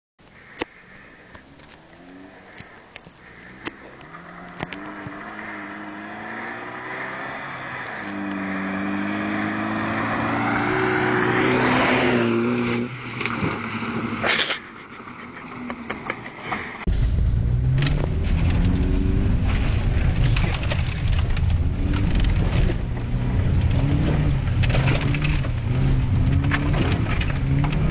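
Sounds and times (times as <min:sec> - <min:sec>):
car accelerating on gravel road: 0:00.8 - 0:14.2, 0:15.0 - 0:27.9
engine and road noise inside car: 0:16.8 - 0:27.9.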